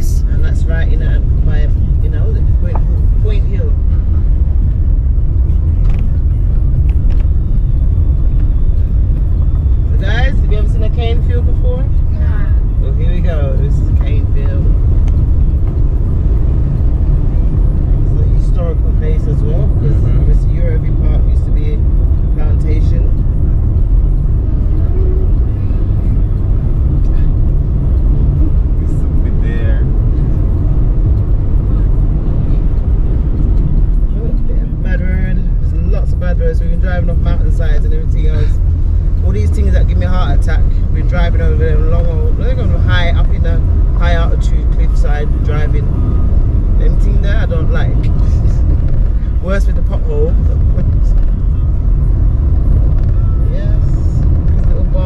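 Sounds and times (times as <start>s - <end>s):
car rumble on rough road: 0.0s - 55.0s.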